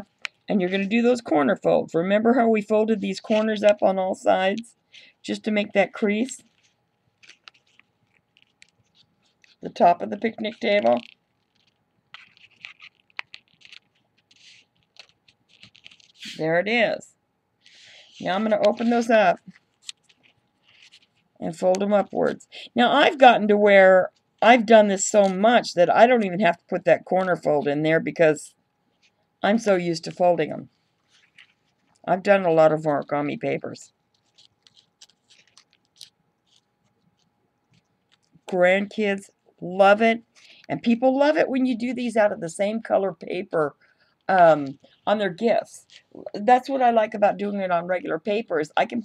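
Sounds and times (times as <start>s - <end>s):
faint steady hum: 0.0s - 49.0s
paper being folded and creased: 6.3s - 16.4s, 17.6s - 22.4s, 30.7s - 32.0s, 32.9s - 38.4s
sharp paper crack: 6.4s - 16.4s, 18.4s - 21.2s, 34.1s - 38.4s.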